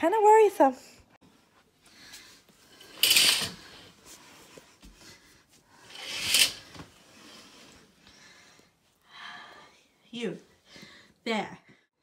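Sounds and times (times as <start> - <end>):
sliding glass door scraping: 2.8 - 3.9, 5.8 - 7.8
lace curtain swishing: 2.9 - 3.8, 5.8 - 7.4.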